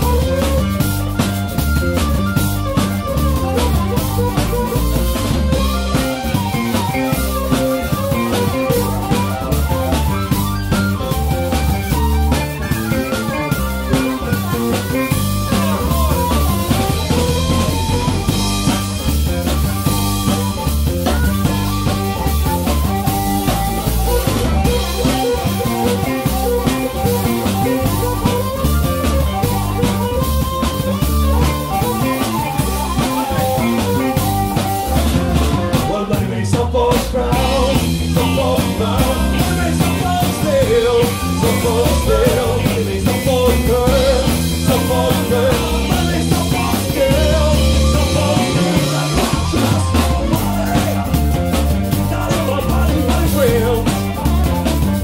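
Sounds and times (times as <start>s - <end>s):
drum kit: 0.0s - 55.0s
electric bass: 0.0s - 55.0s
electric guitar: 0.0s - 55.0s
harmonica lead: 0.0s - 55.0s.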